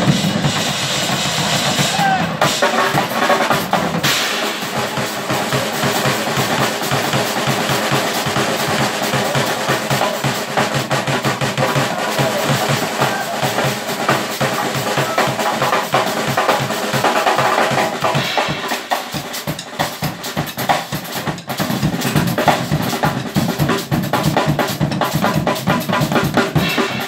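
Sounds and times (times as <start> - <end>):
drum kits playing: 0.0 - 27.0
rapid bass drum strokes: 0.0 - 27.0.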